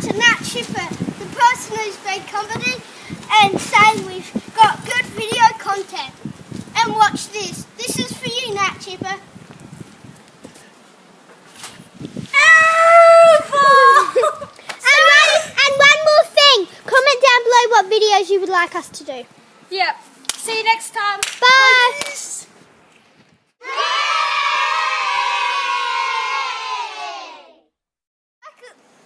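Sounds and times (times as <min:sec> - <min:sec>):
child's high-pitched cry: 0:12.4 - 0:15.6
children cheering: 0:12.4 - 0:15.6, 0:23.6 - 0:27.6.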